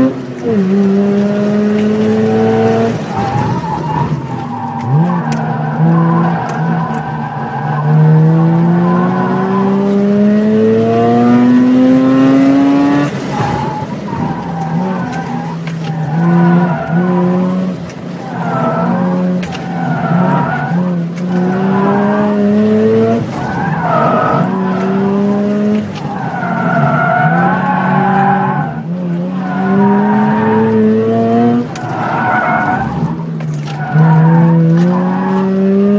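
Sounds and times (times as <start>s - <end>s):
car engine revving: 0.0s - 35.9s
tires squealing: 0.0s - 35.9s.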